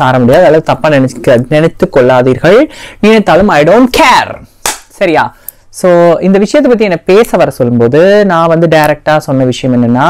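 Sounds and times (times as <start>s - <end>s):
woman talking: 0.0s - 4.4s, 5.0s - 10.0s.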